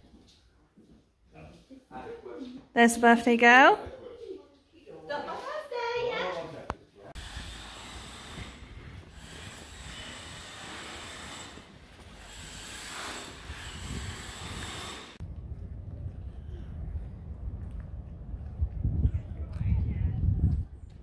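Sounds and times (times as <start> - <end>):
wind blowing across microphone: 7.2 - 21.0.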